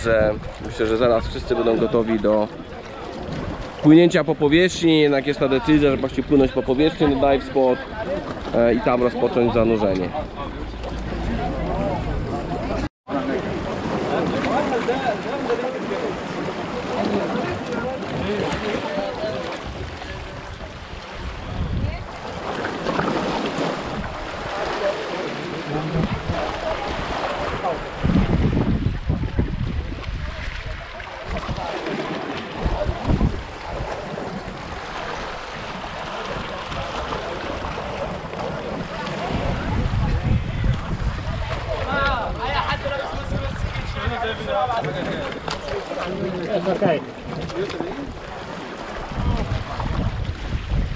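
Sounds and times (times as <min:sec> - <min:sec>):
people talking indistinctly: 0:00.0 - 0:50.2
sea: 0:00.0 - 0:50.9
wind: 0:00.0 - 0:50.9.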